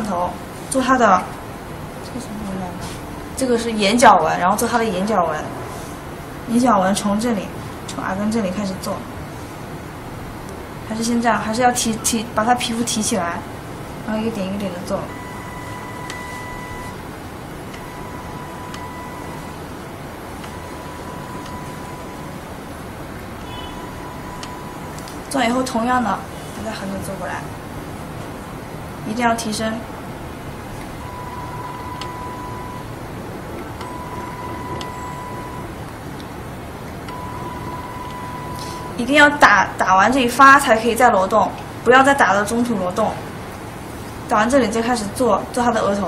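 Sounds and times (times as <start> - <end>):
steady machine hum: 0.0 - 46.0
machine beeping steady tone: 14.8 - 25.0, 30.8 - 35.9, 37.0 - 39.1.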